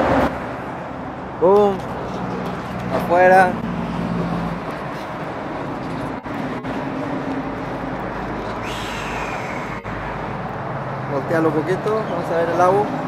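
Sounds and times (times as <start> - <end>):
low traffic hum: 0.0 - 13.0
short falling high whine: 8.6 - 10.3.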